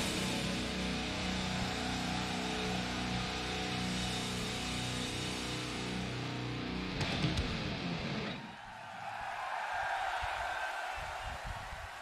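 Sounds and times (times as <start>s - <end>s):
heavy metal band music: 0.0s - 8.4s
crowd cheering: 0.0s - 12.0s.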